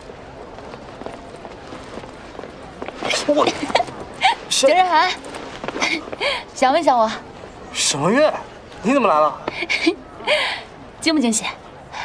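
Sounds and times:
murmur of voices: 0.0 - 12.0
running footsteps: 0.5 - 6.4.

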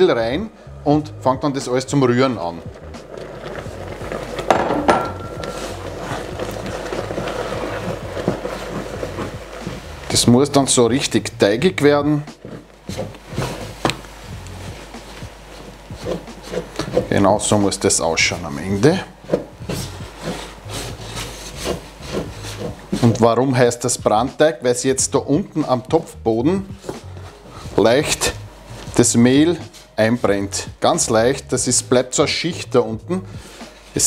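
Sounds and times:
thick stirring and scraping: 0.0 - 34.0
wooden spoon beating dough in pot: 1.2 - 34.0
wooden spoon knocking against pot: 4.5 - 5.4.

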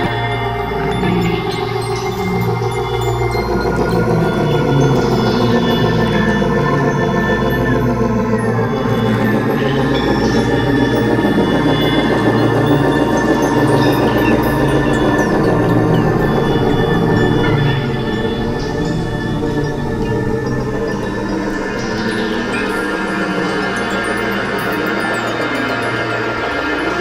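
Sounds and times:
deep low drone: 0.0 - 27.0
falling pitch glides: 0.0 - 27.0
layered synthesizer drones: 0.0 - 27.0.

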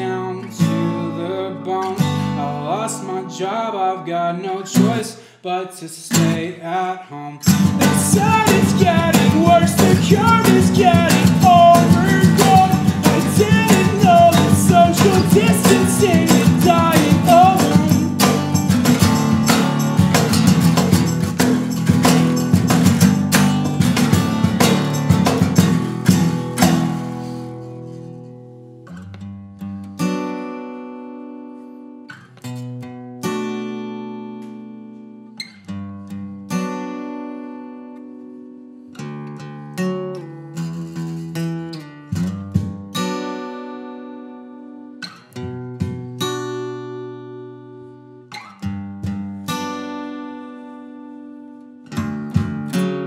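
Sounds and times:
acoustic guitars strumming: 0.0 - 5.4, 6.0 - 53.0.

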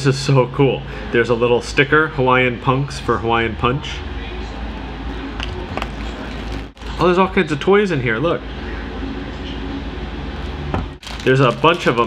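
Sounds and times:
steady low hum: 0.0 - 12.0
cardboard package rustling: 5.8 - 7.1, 11.0 - 12.0.

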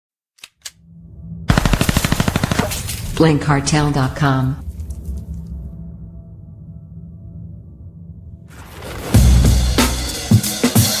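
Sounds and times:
low hum: 0.7 - 8.8
machine-gun fire: 1.5 - 3.0.

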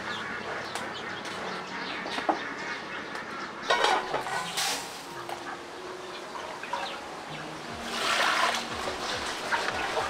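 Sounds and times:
birds chirping: 0.0 - 10.0
poultry calling: 0.0 - 10.0.

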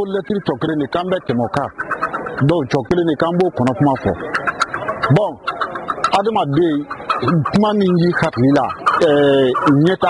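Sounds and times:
man talking on radio: 0.0 - 1.7, 2.4 - 4.2, 6.1 - 10.0.

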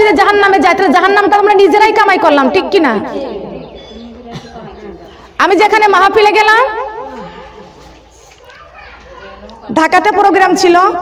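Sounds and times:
faint background voices: 3.1 - 5.4, 6.9 - 10.3.

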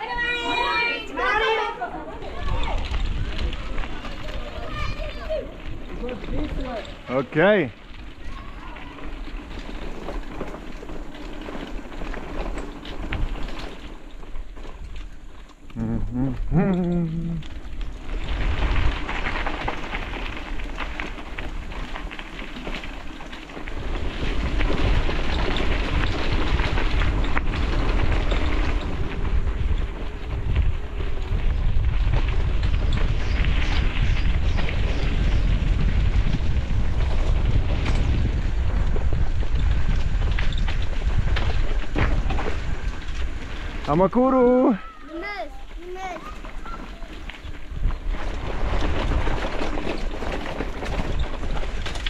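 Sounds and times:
bicycle tyres on dirt trail: 0.0 - 52.0
wind rumbling on microphone: 0.0 - 52.0.

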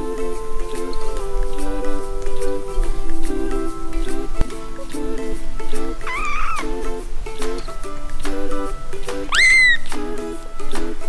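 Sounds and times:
background music: 0.0 - 11.0
kitten mewing: 6.1 - 6.6, 9.3 - 9.9.

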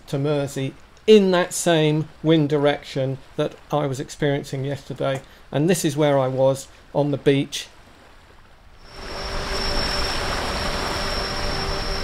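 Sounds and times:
wind: 0.0 - 12.0
waves on shingle beach: 5.3 - 12.0
camera drone whine: 8.8 - 12.0.

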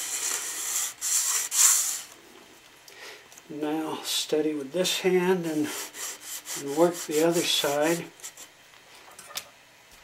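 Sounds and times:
nail scratching sheet steel: 0.0 - 2.1.

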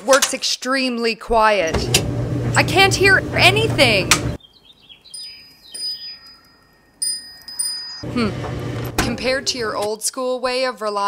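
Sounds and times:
metal wind chime ringing: 5.8 - 8.0.

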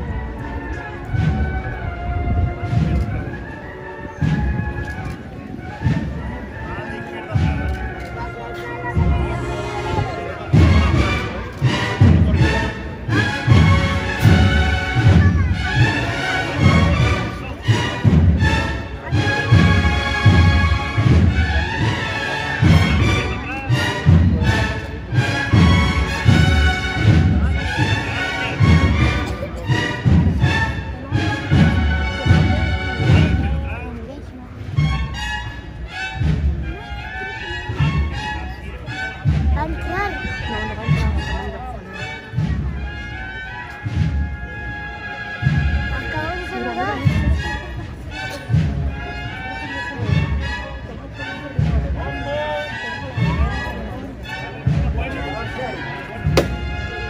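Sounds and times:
steady drumbeat: 0.0 - 34.0, 34.6 - 36.8, 37.7 - 49.0, 56.1 - 57.0
brass band playing march: 0.0 - 57.0.

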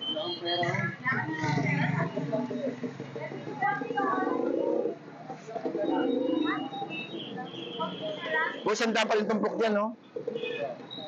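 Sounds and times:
chatter of people talking: 0.0 - 11.0.

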